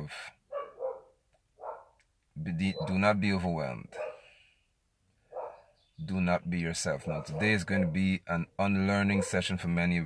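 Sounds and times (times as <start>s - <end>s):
dog barking: 0.5s - 2.0s, 2.6s - 3.2s, 3.9s - 4.4s, 5.3s - 5.7s, 7.0s - 8.0s, 9.0s - 9.5s.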